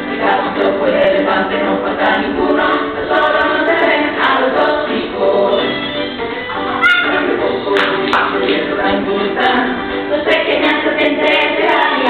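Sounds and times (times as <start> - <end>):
children and teacher singing: 0.0 - 12.0.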